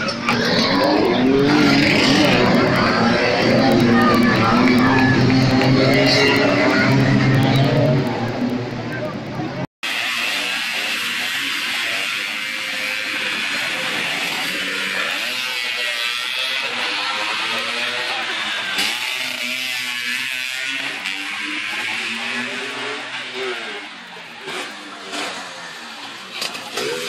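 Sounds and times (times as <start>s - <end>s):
crowd chatter: 0.0s - 27.0s
scooter engines revving past: 0.0s - 27.0s.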